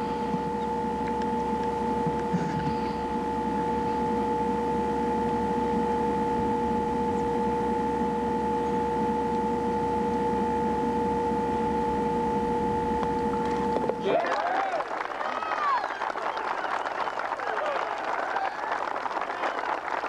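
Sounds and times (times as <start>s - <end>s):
faint higher tone: 0.0s - 14.1s
electronic whine: 0.0s - 14.8s.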